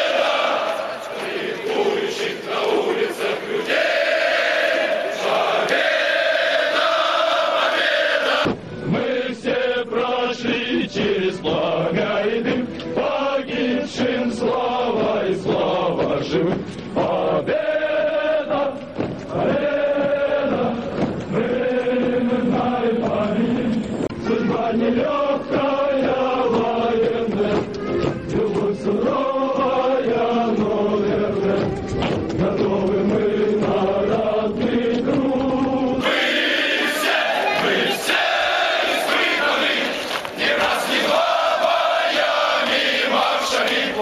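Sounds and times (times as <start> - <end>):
men singing in unison: 0.0 - 44.0.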